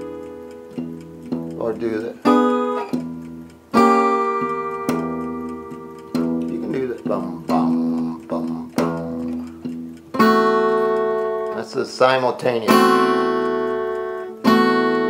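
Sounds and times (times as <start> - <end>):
acoustic guitar chords: 0.0 - 15.0.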